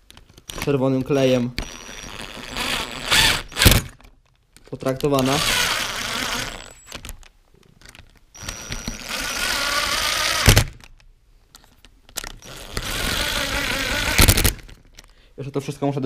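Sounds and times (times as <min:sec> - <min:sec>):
cordless drill running: 0:01.6 - 0:03.9, 0:05.2 - 0:06.8, 0:08.4 - 0:10.6, 0:12.4 - 0:14.6.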